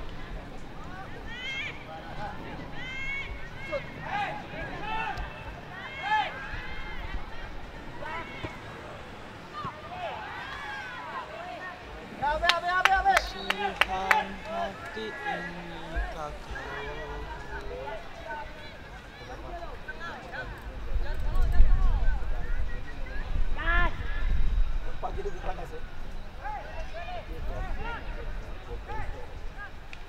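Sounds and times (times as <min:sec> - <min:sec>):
players and onlookers shouting: 0:00.8 - 0:20.2.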